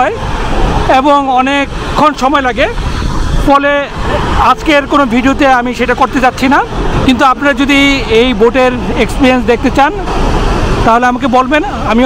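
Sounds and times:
low rushing noise: 0.0s - 12.0s
man speaking: 0.9s - 2.8s, 3.4s - 10.1s, 10.8s - 12.0s.

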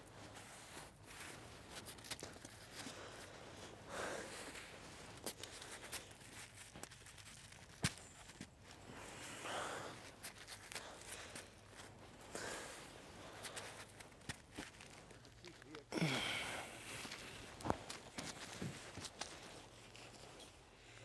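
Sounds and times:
breathing: 2.7s - 6.2s, 8.9s - 14.0s, 16.0s - 17.6s.

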